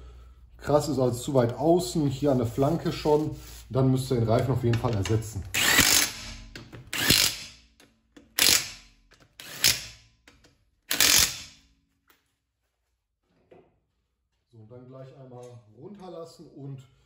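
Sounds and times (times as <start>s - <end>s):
impact wrench bursts: 5.5s - 10.1s, 10.9s - 11.6s.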